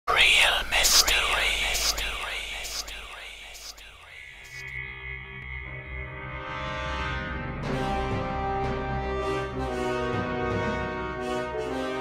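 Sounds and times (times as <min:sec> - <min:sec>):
sweeping hiss sound effect: 0:00.3 - 0:05.9.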